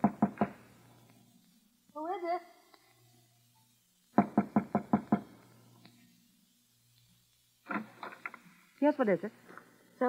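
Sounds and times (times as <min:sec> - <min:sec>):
knuckles knocking on door: 0:00.0 - 0:00.5, 0:04.2 - 0:05.3.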